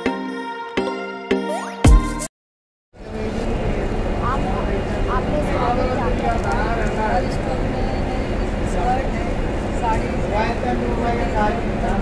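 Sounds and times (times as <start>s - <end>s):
people talking: 3.0s - 12.0s.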